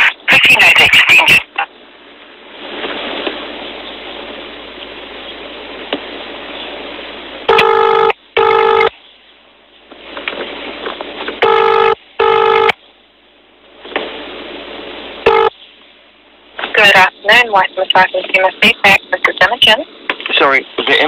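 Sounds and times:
phone line hiss: 0:07.4 - 0:09.0, 0:11.4 - 0:12.8, 0:15.2 - 0:15.6
telephone ringback tone: 0:07.5 - 0:08.9, 0:11.4 - 0:12.8, 0:15.3 - 0:15.5.

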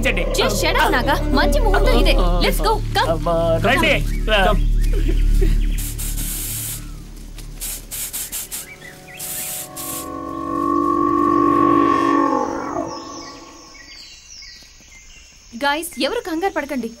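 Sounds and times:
high chirps gliding down: 0:00.0 - 0:14.0
short hissing bursts: 0:05.4 - 0:10.2
wavering droning tone: 0:08.9 - 0:14.0.

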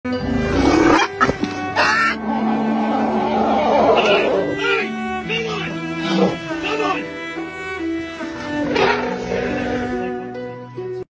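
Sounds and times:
background music: 0:00.1 - 0:11.0
elephant roaring call: 0:00.3 - 0:04.6, 0:06.0 - 0:06.4, 0:08.6 - 0:09.9.

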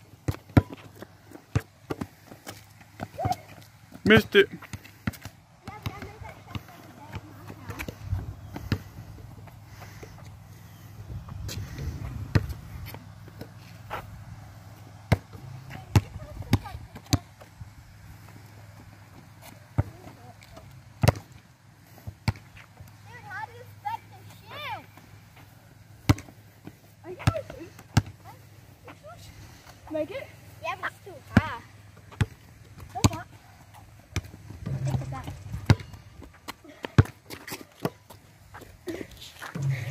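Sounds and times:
basketball bouncing: 0:00.2 - 0:08.0, 0:11.4 - 0:13.5, 0:15.0 - 0:17.4, 0:19.8 - 0:21.4, 0:26.0 - 0:26.4, 0:27.1 - 0:28.2, 0:31.3 - 0:33.3, 0:34.2 - 0:38.2, 0:39.5 - 0:39.9.

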